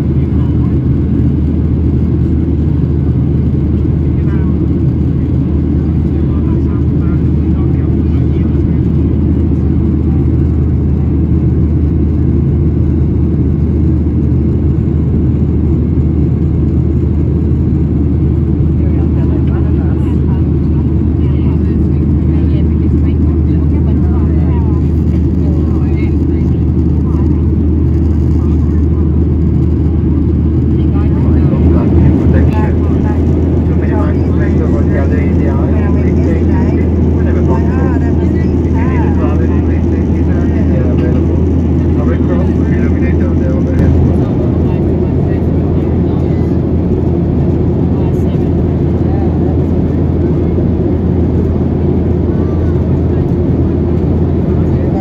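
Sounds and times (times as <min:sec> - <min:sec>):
faint passenger voices murmuring: 0:00.0 - 0:55.0
jet engines droning: 0:00.0 - 0:55.0.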